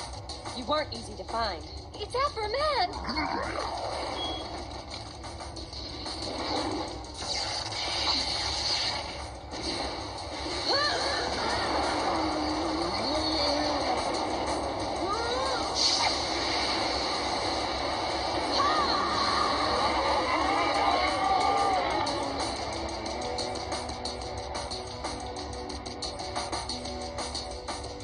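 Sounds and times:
background music: 0:00.0 - 0:28.0
action sound effects: 0:02.9 - 0:23.5.

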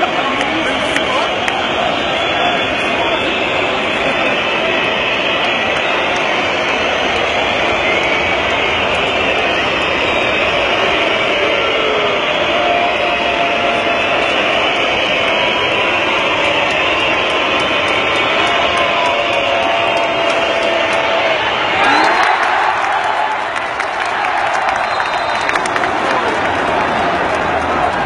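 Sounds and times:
arena crowd noise: 0:00.0 - 0:28.0.

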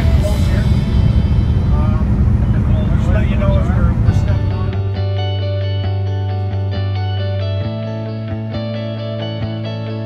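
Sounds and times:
outboard motor rumbling: 0:00.0 - 0:05.6
guitar music: 0:00.0 - 0:10.0.

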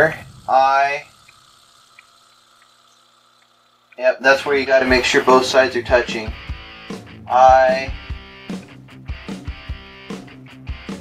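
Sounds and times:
small ticks: 0:00.0 - 0:05.0
low steady hum: 0:00.0 - 0:08.3.

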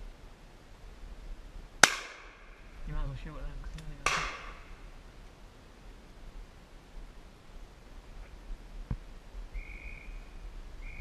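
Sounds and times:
shotgun shots with echo: 0:04.0 - 0:04.7.

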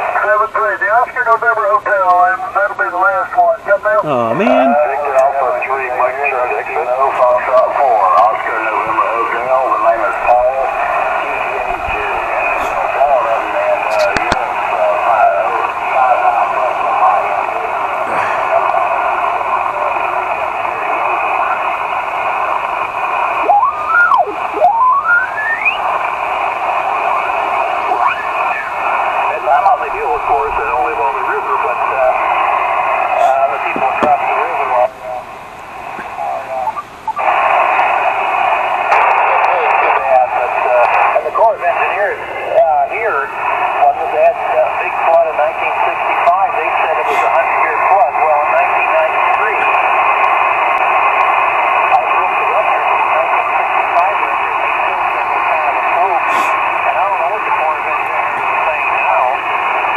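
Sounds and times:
radio hiss: 0:00.0 - 0:59.9
radio voices: 0:00.0 - 0:59.9
rising whistle: 0:23.5 - 0:25.9, 0:27.9 - 0:28.7.

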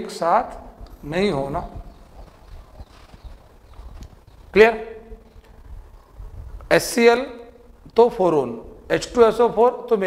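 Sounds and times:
man speaking: 0:00.0 - 0:01.8, 0:04.5 - 0:05.1, 0:06.7 - 0:10.0.

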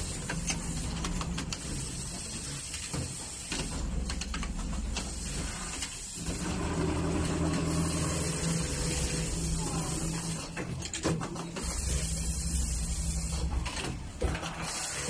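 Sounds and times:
sewing machine running hum: 0:03.7 - 0:15.0.

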